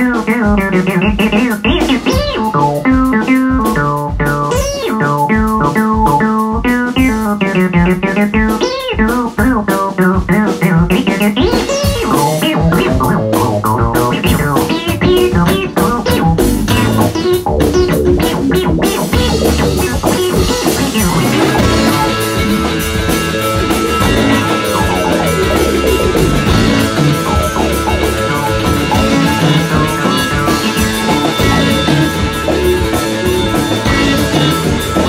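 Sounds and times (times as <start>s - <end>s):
rock band playing: 0.0s - 35.0s.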